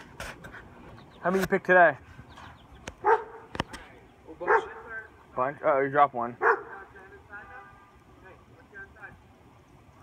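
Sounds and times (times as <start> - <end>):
dog barking: 3.0 - 3.5, 4.4 - 4.9, 6.4 - 6.9.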